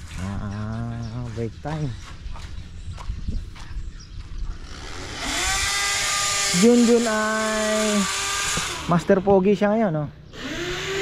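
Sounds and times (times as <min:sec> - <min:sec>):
power tool motor whine: 0:04.6 - 0:09.4, 0:10.3 - 0:11.0.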